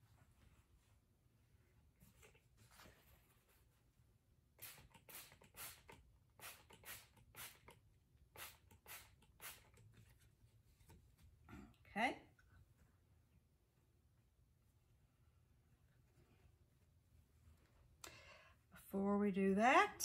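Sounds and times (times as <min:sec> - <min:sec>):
spray bottle squirts: 0:04.6 - 0:09.8.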